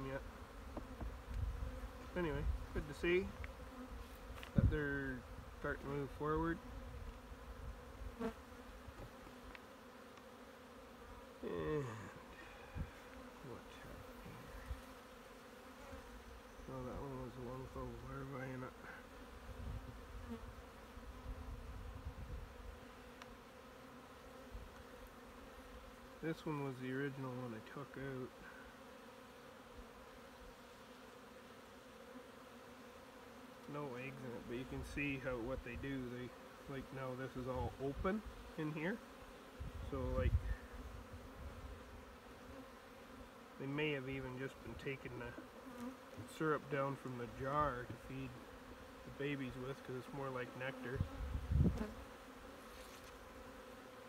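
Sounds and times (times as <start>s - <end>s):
honeybees buzzing: 0.0s - 54.0s.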